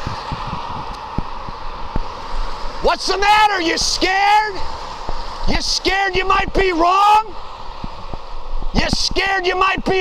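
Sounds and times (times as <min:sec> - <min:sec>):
cars passing on road: 0:00.0 - 0:10.0.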